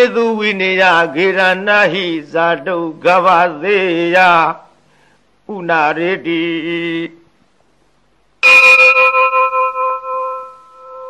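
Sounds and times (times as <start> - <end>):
metal bell ringing: 8.4 - 11.0.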